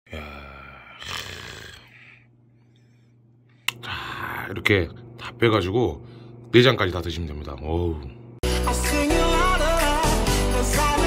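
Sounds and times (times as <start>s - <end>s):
person low drawn-out vocal sound: 0.1s - 2.0s
faint steady hum: 0.1s - 8.4s.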